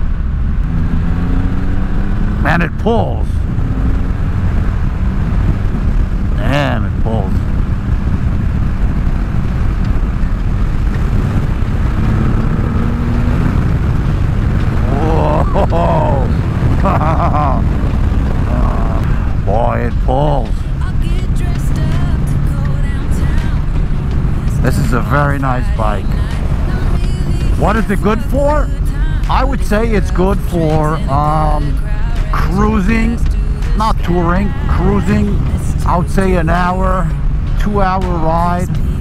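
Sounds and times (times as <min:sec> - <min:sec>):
motorcycle engine droning: 0:00.0 - 0:39.0
wind and road rush: 0:00.0 - 0:39.0.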